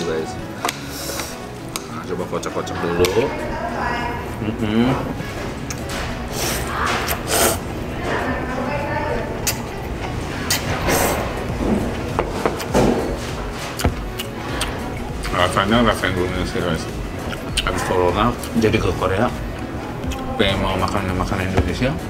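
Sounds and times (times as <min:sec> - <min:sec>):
background music: 0:00.0 - 0:22.0
slurping noodles: 0:06.3 - 0:07.7
chewing: 0:13.6 - 0:15.4.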